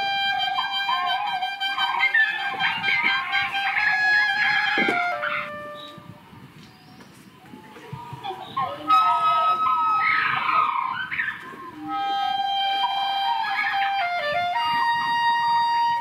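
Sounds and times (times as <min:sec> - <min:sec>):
solo clarinet playing: 0:00.0 - 0:06.2, 0:08.6 - 0:16.0.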